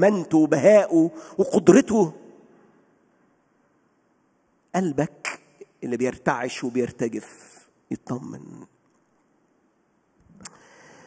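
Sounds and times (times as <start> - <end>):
man speaking into a microphone: 0.0 - 2.4, 4.7 - 8.8
faint intake of breath: 10.4 - 11.0.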